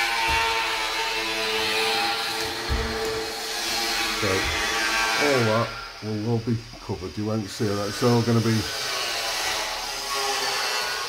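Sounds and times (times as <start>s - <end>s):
power tool running: 0.0s - 11.0s.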